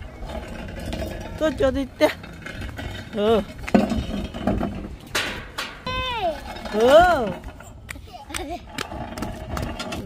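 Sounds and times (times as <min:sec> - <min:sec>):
raspy child noise: 0:05.8 - 0:06.5.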